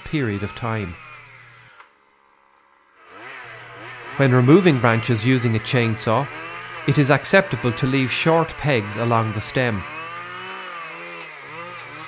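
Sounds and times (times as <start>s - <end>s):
chainsaw cutting branches: 0.0s - 2.0s, 3.0s - 12.0s.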